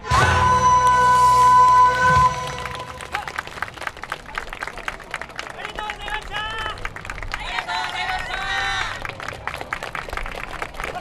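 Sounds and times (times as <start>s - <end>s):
sharp claps: 2.4s - 11.0s.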